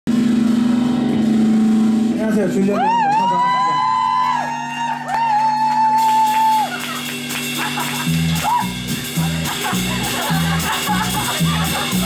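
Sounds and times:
rock band sustained chord: 0.1s - 5.1s, 5.9s - 12.0s.

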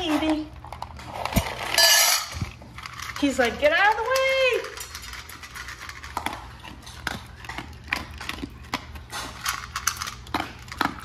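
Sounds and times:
kibble rattling into metal bowl: 0.0s - 11.0s.

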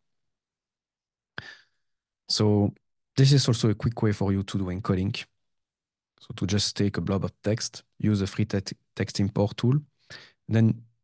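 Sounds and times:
sigh into microphone: 1.4s - 1.8s, 10.0s - 10.4s.

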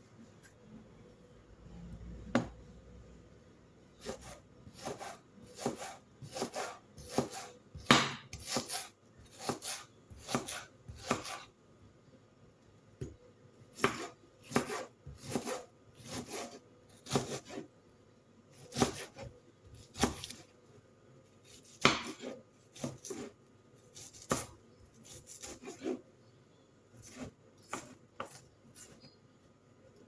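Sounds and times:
knife chopping on wooden board: 2.3s - 2.6s, 4.0s - 11.4s, 13.8s - 17.6s, 18.7s - 20.4s, 21.5s - 23.3s, 24.0s - 26.0s, 27.0s - 29.0s.

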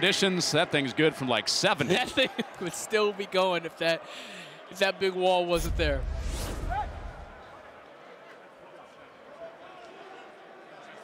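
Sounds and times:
deep low boom: 5.6s - 7.6s
rising whoosh: 5.6s - 7.7s.

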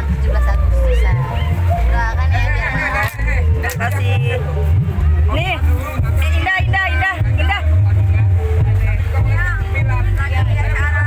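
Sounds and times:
heavy bass: 0.0s - 11.0s.

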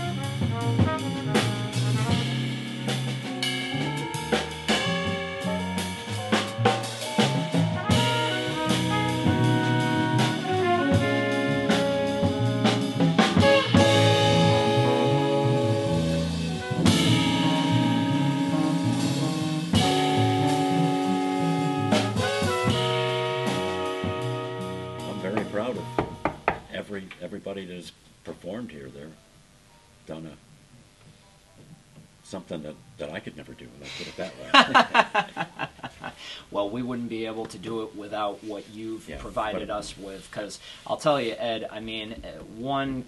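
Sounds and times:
horns holding notes: 0.0s - 26.6s
bass line: 0.0s - 27.0s
jazz band chord: 0.0s - 27.7s
drum kit: 0.0s - 29.1s, 31.6s - 43.0s
man talking: 25.0s - 25.9s, 26.7s - 29.2s, 30.1s - 30.4s, 32.2s - 34.8s, 36.4s - 43.0s
sharp knocks: 25.4s - 26.7s.

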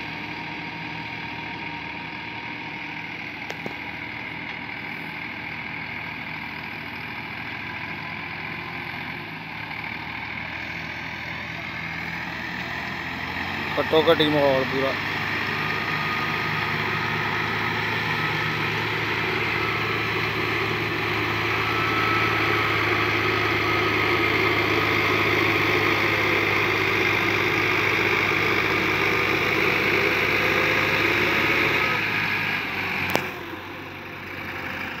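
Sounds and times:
tractor diesel engines under load: 0.0s - 35.0s
sharp click: 33.1s - 33.3s.

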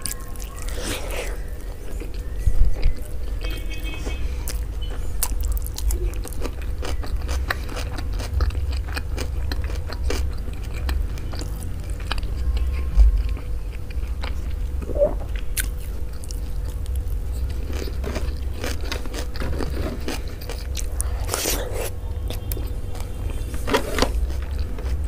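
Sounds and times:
close chewing: 0.0s - 25.0s.

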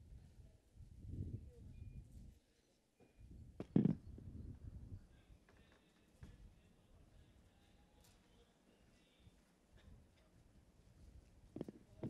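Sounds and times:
microphone handling noise: 3.6s - 4.4s, 11.5s - 12.0s.

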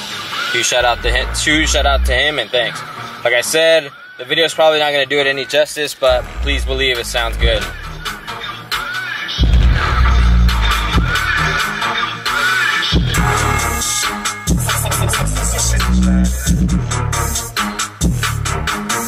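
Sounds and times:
electronic music with heavy bass: 0.0s - 3.6s, 6.0s - 19.0s.

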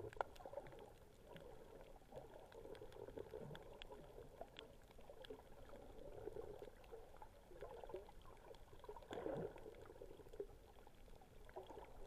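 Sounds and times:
muffled underwater water wash: 0.0s - 12.0s
small clicks and crackles: 0.0s - 12.0s.

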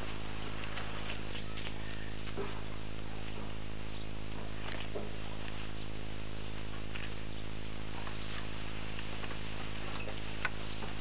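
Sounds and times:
electrical hum: 0.0s - 11.0s
faint ticks: 8.0s - 11.0s.

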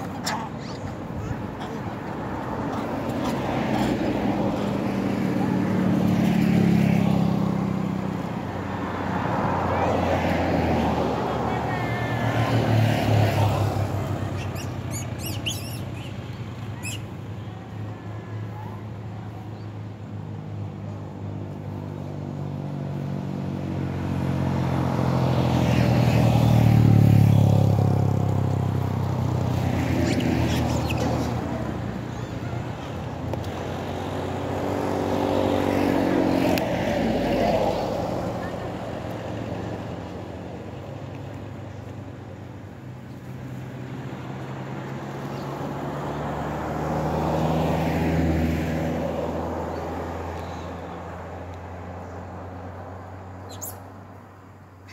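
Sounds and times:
vehicles passing on road: 0.0s - 54.9s.

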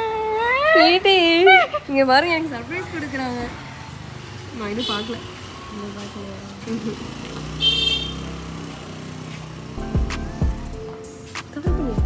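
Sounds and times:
motor vehicle running: 2.1s - 12.0s
music with deep falling bass: 9.8s - 10.9s, 11.7s - 12.0s.

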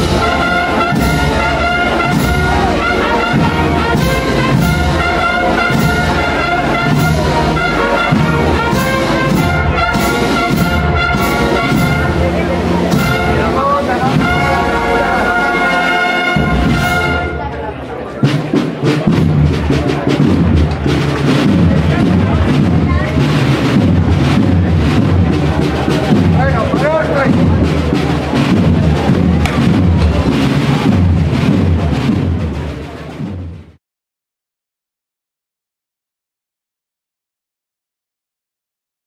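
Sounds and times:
crowd shouting: 0.0s - 18.2s
brass band playing: 0.0s - 33.8s.

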